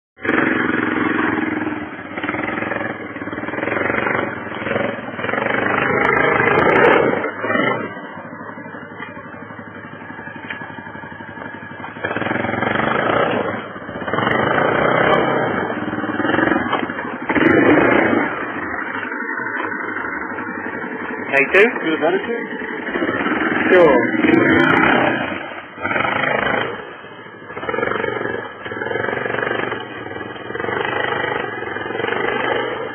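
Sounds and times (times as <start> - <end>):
quad bike engine revving: 0.2 - 32.9.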